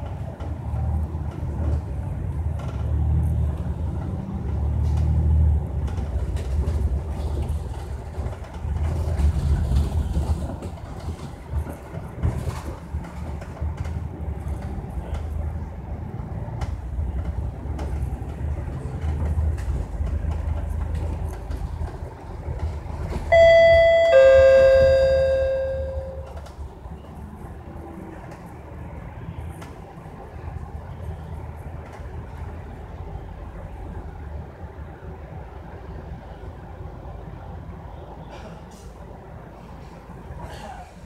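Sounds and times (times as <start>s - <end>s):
bus engine and tyres rumbling: 0.0s - 41.0s
two-tone ding-dong chime: 23.3s - 26.3s.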